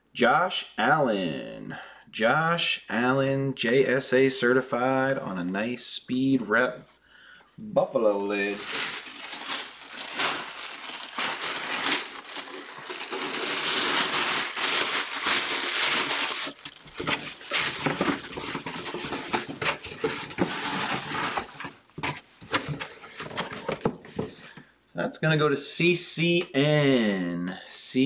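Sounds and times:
plastic wrap crinkling: 8.4 - 22.3.

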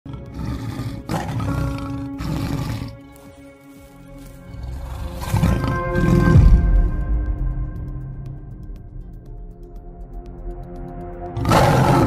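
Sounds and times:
tiger roaring: 0.1 - 3.0, 4.5 - 6.6, 11.4 - 12.0
dramatic music: 0.1 - 12.0.

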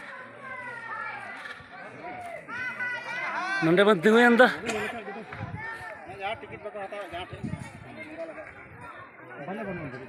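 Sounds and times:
crowd chatter outdoors: 0.0 - 10.0.

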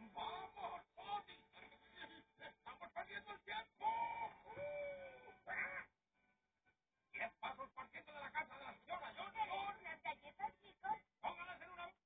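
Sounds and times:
television audio: 0.0 - 12.0.

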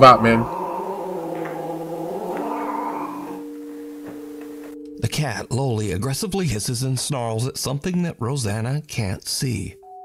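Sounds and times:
cat growling yowl: 0.0 - 3.5.

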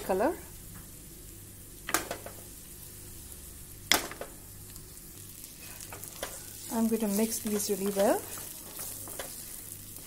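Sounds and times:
oil sizzling in a pan: 0.0 - 10.0.

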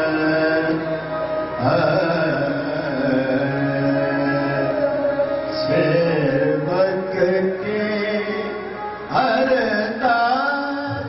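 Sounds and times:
chant-like singing: 0.0 - 11.0
harmonium sustained notes: 0.0 - 11.0
tabla playing: 0.0 - 11.0.

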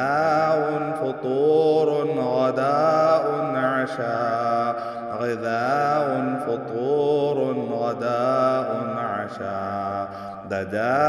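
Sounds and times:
person chanting: 0.0 - 11.0.

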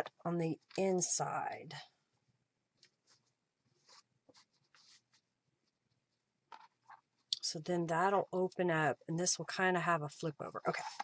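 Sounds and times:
fabric rustling: 2.7 - 7.3.

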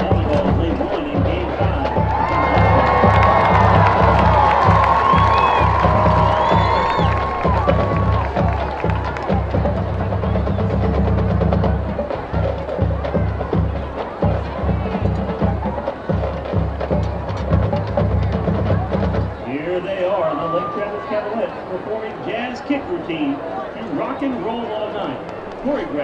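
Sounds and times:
indistinct voices: 0.0 - 26.0.

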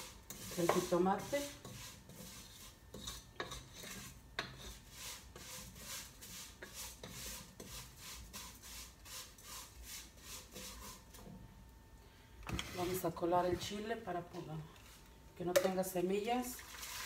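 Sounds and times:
wooden spoon scraping noodles: 0.0 - 11.1, 12.6 - 13.1.

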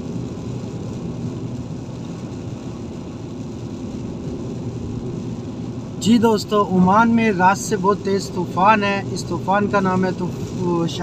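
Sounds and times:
car road noise hum: 0.0 - 11.0
tyres hissing on wet road: 0.0 - 11.0.

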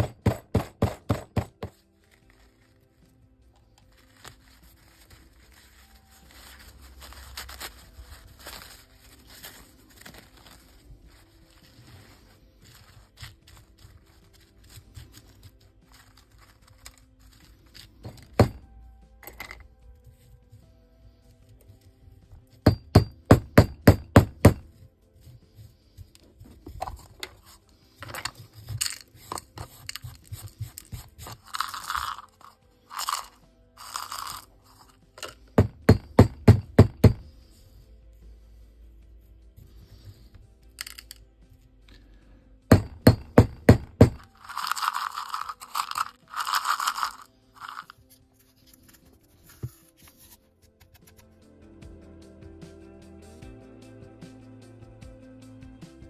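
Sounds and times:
hammer knocking on gravel: 0.0 - 1.8, 18.1 - 18.6, 22.6 - 24.7, 35.6 - 37.3, 42.7 - 44.3
background music: 0.0 - 56.0.

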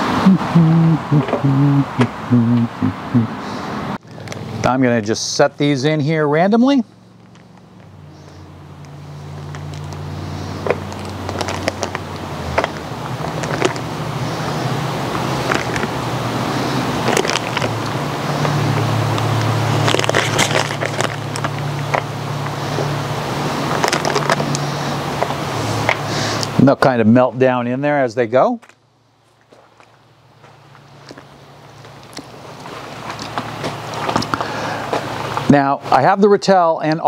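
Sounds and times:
steady low hum: 0.0 - 27.8
foil crinkling: 10.7 - 13.9, 17.0 - 17.8, 19.7 - 22.1, 23.7 - 24.6.

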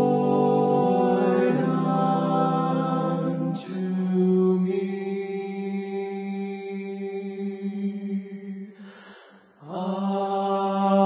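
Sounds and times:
men singing a cappella: 0.0 - 8.9, 9.6 - 11.0.

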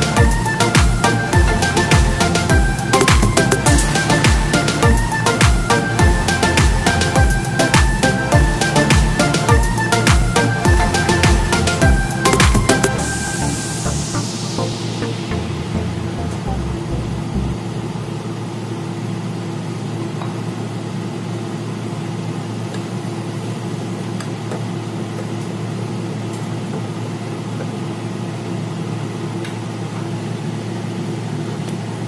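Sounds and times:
machine hum: 0.0 - 19.4.

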